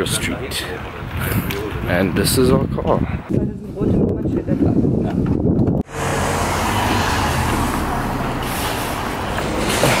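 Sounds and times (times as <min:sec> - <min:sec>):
traffic hiss: 0:08.2 - 0:09.8.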